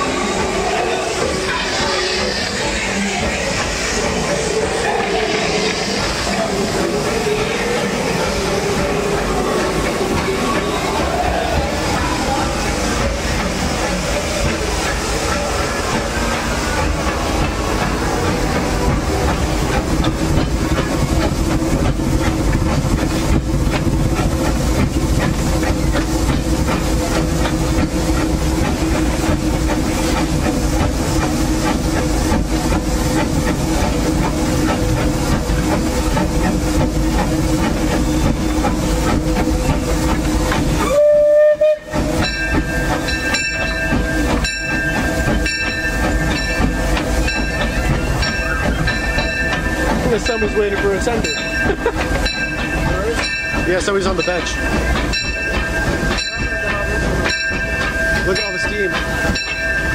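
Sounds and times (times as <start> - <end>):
steam locomotive rumble and hiss: 0.0 - 59.9.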